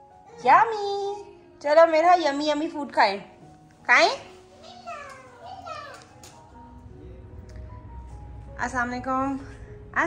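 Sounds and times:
soft background music: 0.0s - 10.0s
low steady hum: 6.5s - 10.0s.

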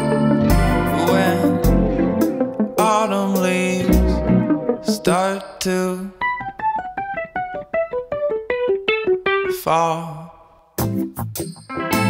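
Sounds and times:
digital piano descending run: 0.0s - 9.2s.

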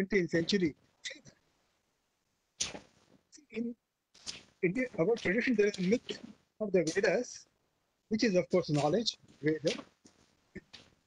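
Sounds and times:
man speaking: 0.0s - 1.2s, 3.4s - 3.8s, 4.6s - 7.4s, 8.1s - 9.8s.

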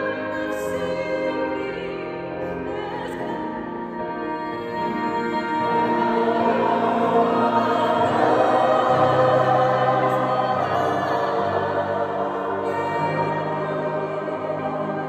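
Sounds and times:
choir singing sustained chords: 0.0s - 15.0s.

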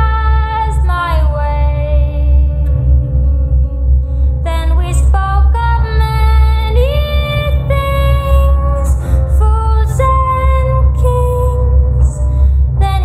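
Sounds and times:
heavy bass: 0.0s - 13.0s
song with long held notes: 0.0s - 13.0s.

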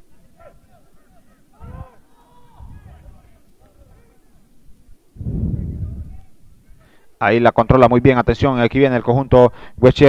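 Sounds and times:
muffled rumble on microphone: 5.2s - 6.8s.

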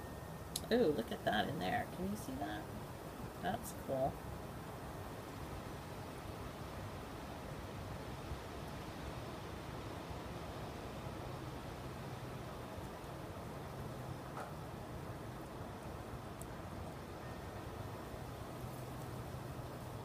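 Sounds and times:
faint low hum: 0.0s - 20.0s
outdoor hiss: 0.0s - 20.0s.

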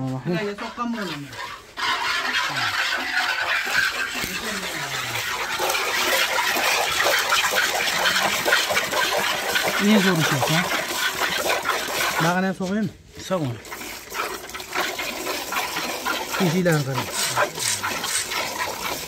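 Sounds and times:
milk squirting into metal bucket: 0.3s - 19.0s.

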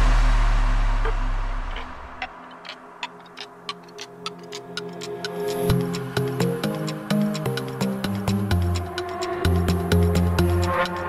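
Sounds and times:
clicking percussion: 1.0s - 11.0s.

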